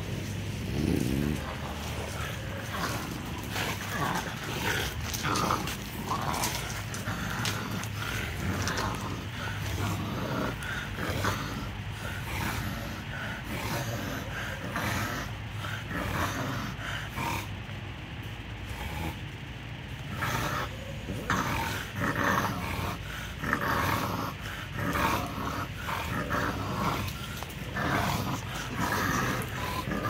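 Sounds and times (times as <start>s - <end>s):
bulldog growling: 0.0s - 17.6s, 18.6s - 30.0s.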